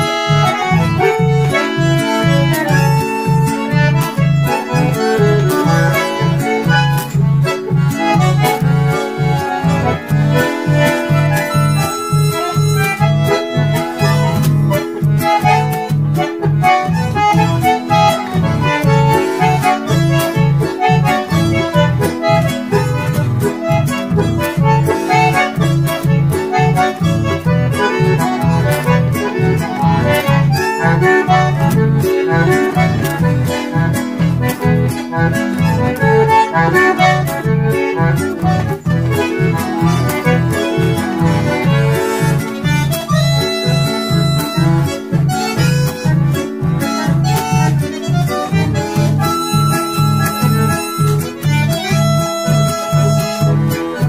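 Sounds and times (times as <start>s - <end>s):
acoustic guitar strumming: 0.0s - 54.0s
bandoneons playing a melody: 0.0s - 54.0s.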